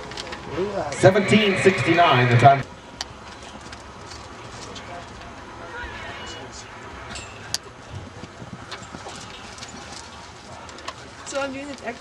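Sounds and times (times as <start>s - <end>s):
steady background noise: 0.0s - 12.0s
horse galloping on dirt: 7.9s - 12.0s.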